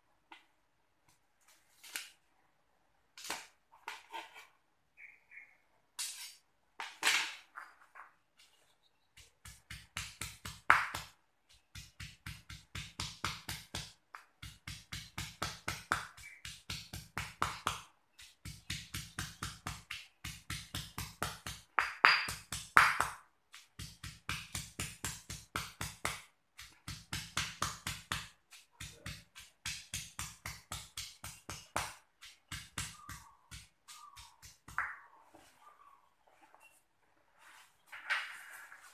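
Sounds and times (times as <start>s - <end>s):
stone pestle pounding in mortar: 9.2s - 35.0s.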